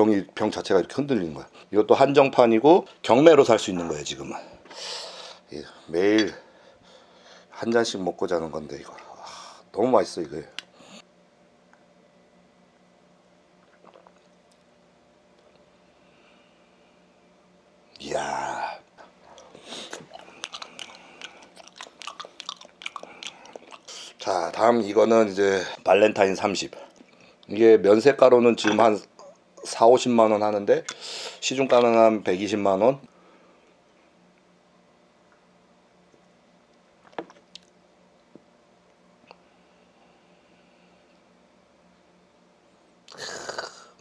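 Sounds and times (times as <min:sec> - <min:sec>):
chewing food: 0:19.3 - 0:24.3
mouth clicks and smacks: 0:19.3 - 0:24.3.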